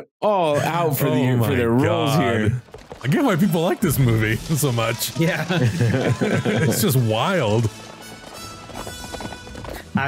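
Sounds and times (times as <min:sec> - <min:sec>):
film music: 0:01.5 - 0:10.0
horse hoofbeats galloping: 0:02.0 - 0:10.0.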